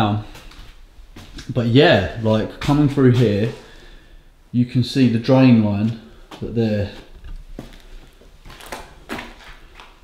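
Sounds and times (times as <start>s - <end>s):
footsteps on gritty concrete: 5.9s - 10.0s.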